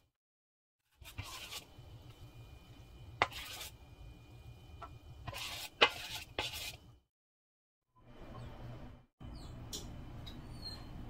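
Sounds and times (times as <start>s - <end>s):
batter scraping into tin: 1.0s - 1.7s, 3.2s - 3.8s, 5.2s - 6.8s.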